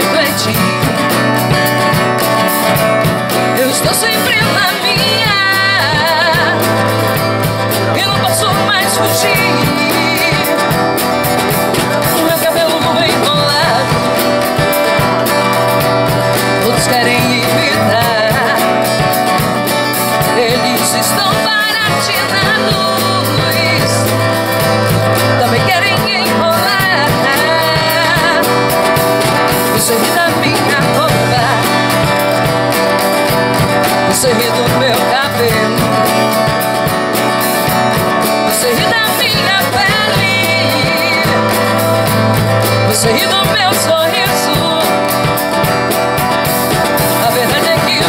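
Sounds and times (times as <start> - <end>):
drum kit: 0.0 - 48.0
strummed acoustic guitar: 0.0 - 48.0
woman singing: 0.0 - 48.0.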